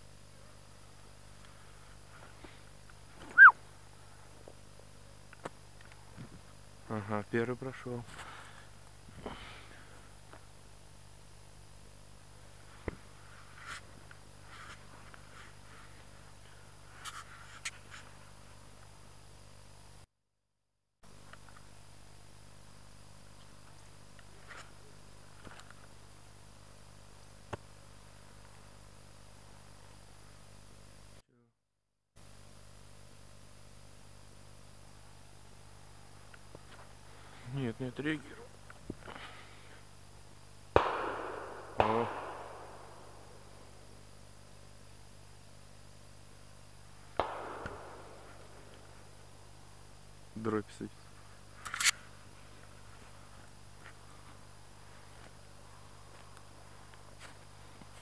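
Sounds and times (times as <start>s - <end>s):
outdoor hum and hiss: 0.0s - 20.1s, 21.0s - 31.5s, 32.2s - 58.0s
high chirps: 3.3s - 3.6s
shotgun shots with rolling echo: 40.7s - 43.8s, 47.2s - 49.2s.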